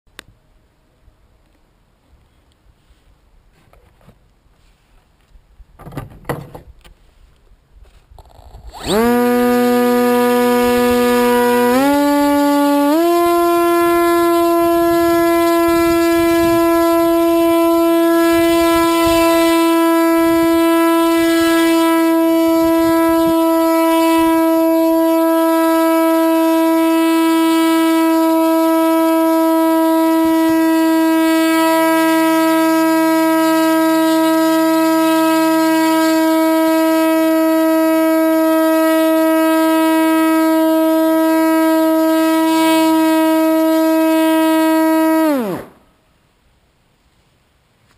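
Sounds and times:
model aircraft motor drone: 8.2s - 45.8s.

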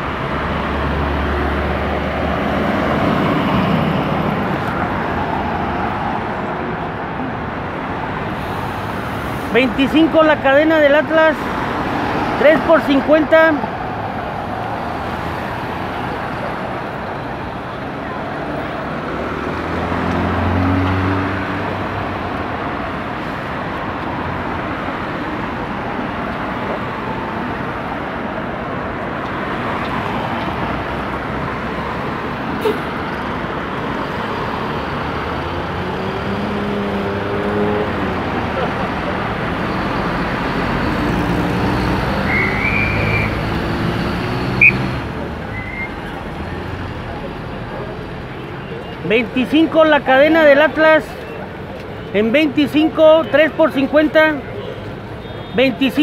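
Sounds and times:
road traffic cars passing: 0.0s - 56.0s.

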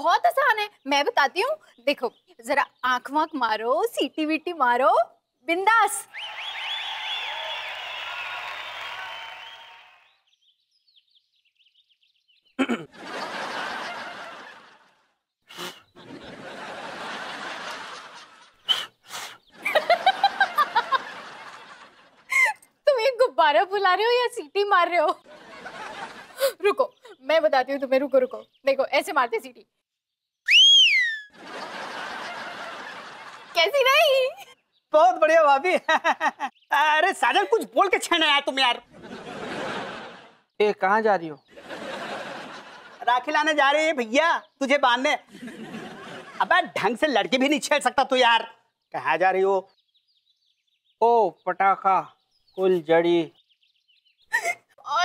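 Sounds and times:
recorded audience laughter: 12.7s - 15.2s, 16.0s - 18.6s, 19.6s - 22.6s, 25.2s - 26.7s, 31.2s - 34.5s, 38.9s - 40.6s, 41.5s - 43.5s, 45.3s - 46.9s
woman's catcall whistle: 30.5s - 31.3s.

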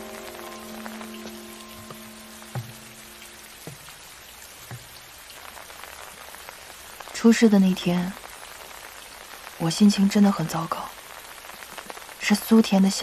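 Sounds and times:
soft background music: 0.0s - 4.9s
rain falling: 0.0s - 13.0s
soft low thuds: 1.8s - 4.0s.

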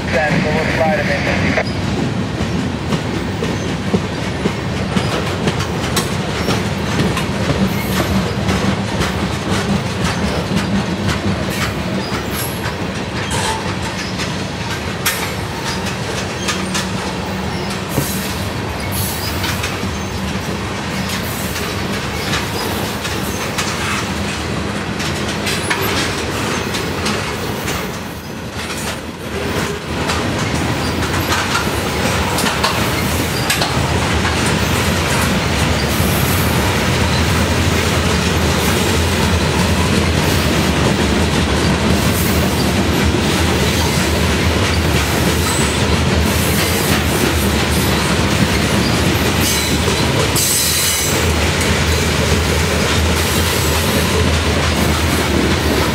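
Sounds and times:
freight train wheels rumbling: 0.0s - 55.9s
clicks over rail joints: 29.6s - 35.8s.

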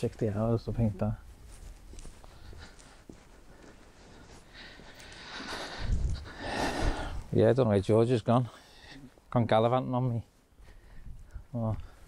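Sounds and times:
man breathing: 2.1s - 7.3s, 8.5s - 9.3s, 10.6s - 12.0s.

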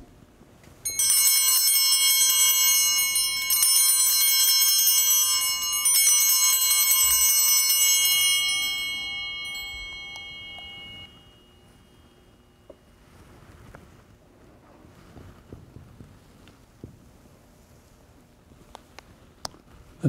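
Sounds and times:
altar bells ringing: 0.8s - 13.1s.

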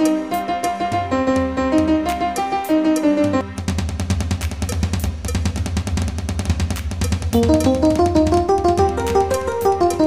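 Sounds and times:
piano melody: 0.0s - 3.8s, 7.3s - 10.0s
programmed drum beat: 0.0s - 10.0s.

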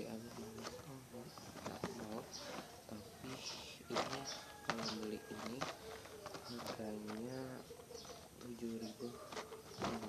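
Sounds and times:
dove cooing: 0.0s - 10.0s
cardboard box clicks and rustles: 3.9s - 7.6s.

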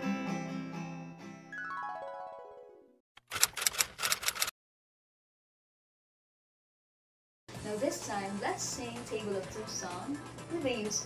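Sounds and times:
typewriter key clacks: 3.2s - 4.5s.

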